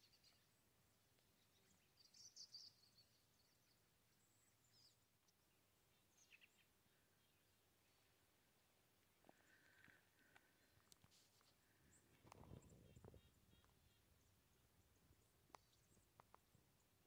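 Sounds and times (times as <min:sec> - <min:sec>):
faint high bird chirps: 0:00.0 - 0:00.6, 0:01.2 - 0:08.2, 0:11.8 - 0:17.0.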